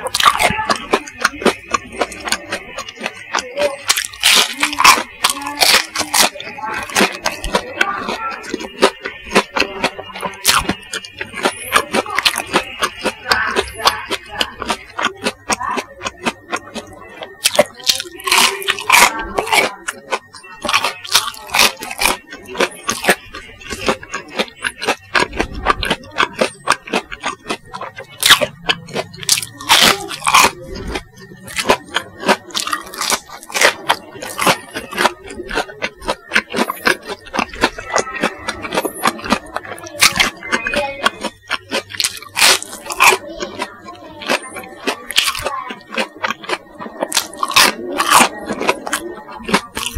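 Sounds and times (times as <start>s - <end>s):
crunching of chicken nuggets: 0.0s - 49.9s
wet mouth sounds: 0.0s - 49.9s.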